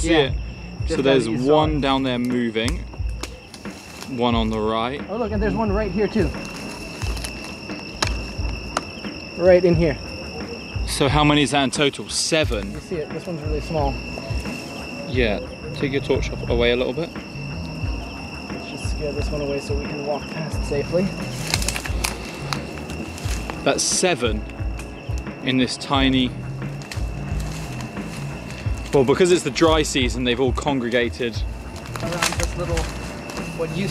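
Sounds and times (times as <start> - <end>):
crickets trilling: 0.0 - 33.9
people moving through dry grass: 0.0 - 33.9
sharp clicks: 21.2 - 23.6, 26.7 - 29.0.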